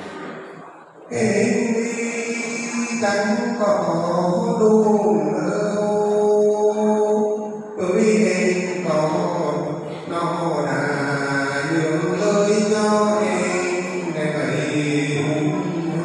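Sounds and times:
man singing into a microphone: 0:00.9 - 0:16.0.

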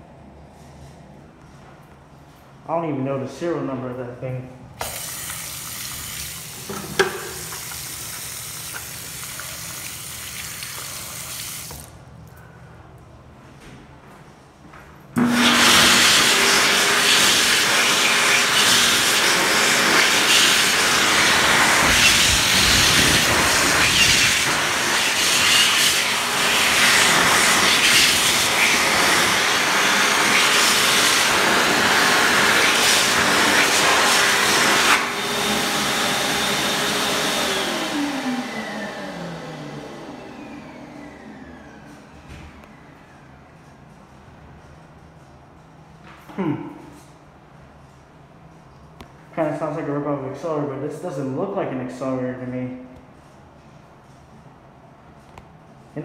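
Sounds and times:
hand dryer blowing air: 0:04.8 - 0:12.1, 0:15.2 - 0:43.3
motor winding down whine: 0:15.2 - 0:43.3.

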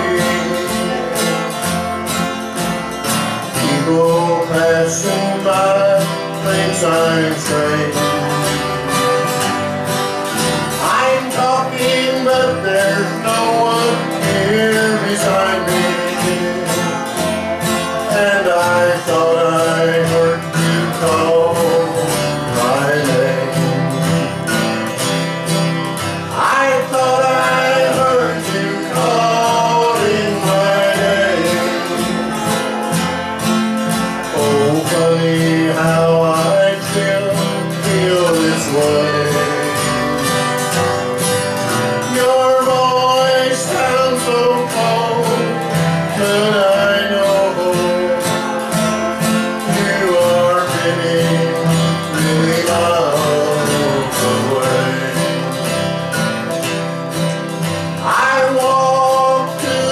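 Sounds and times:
sliding melody line: 0:00.0 - 0:56.5
country band music: 0:00.0 - 0:59.9.

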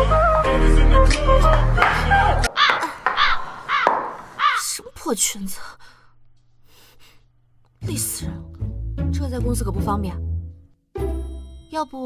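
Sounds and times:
background music: 0:00.0 - 0:02.6, 0:07.8 - 0:12.0.

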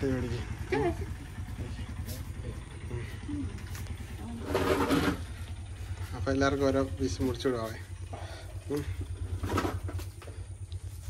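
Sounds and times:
low motor drone: 0:00.0 - 0:11.0.

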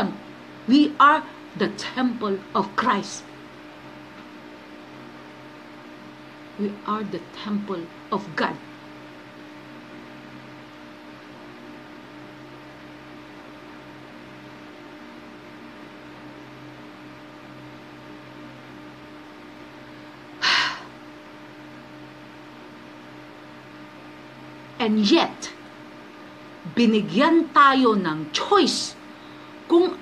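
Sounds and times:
steady low hum: 0:00.0 - 0:30.0
woman breathing loudly: 0:20.4 - 0:21.0.

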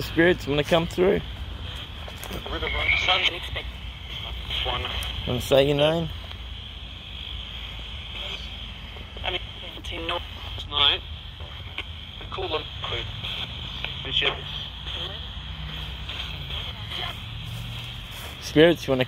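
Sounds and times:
radio static hiss: 0:00.0 - 0:19.0.

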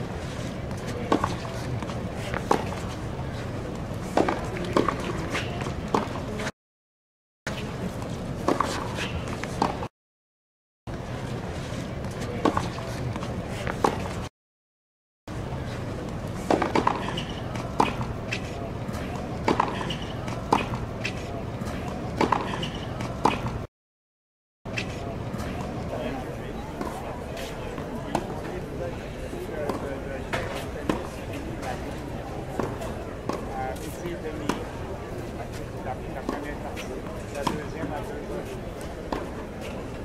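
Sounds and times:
murmur of spectators: 0:00.0 - 0:06.5, 0:10.9 - 0:14.3, 0:15.3 - 0:23.7, 0:24.7 - 0:40.0
people talking: 0:00.4 - 0:06.5, 0:11.8 - 0:14.2, 0:15.4 - 0:23.6, 0:24.7 - 0:40.0
tennis balls bouncing on court: 0:00.7 - 0:03.0, 0:04.0 - 0:06.4, 0:08.4 - 0:09.9, 0:16.4 - 0:23.6, 0:27.8 - 0:28.5, 0:29.6 - 0:34.8, 0:37.4 - 0:38.1, 0:38.8 - 0:39.8
tennis balls hit with rackets: 0:00.7 - 0:03.0, 0:04.0 - 0:06.5, 0:08.3 - 0:09.9, 0:16.3 - 0:23.7, 0:26.7 - 0:28.6, 0:29.6 - 0:34.8, 0:35.5 - 0:39.8.

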